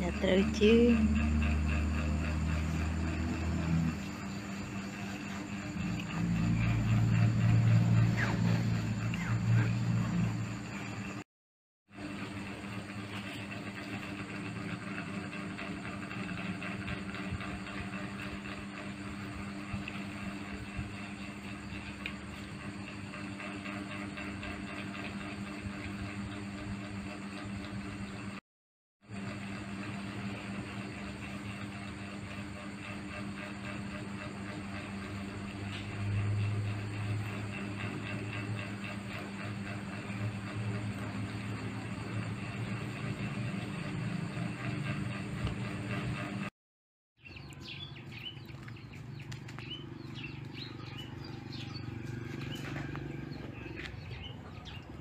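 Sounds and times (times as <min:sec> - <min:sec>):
mechanical hum with hiss: 0:00.0 - 0:11.2, 0:29.0 - 0:46.5.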